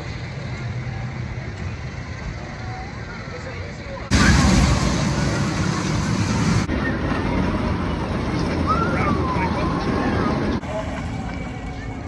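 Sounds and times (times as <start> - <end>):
roller coaster rumbling on tracks: 0.0 - 12.0
people's voices: 0.8 - 12.0.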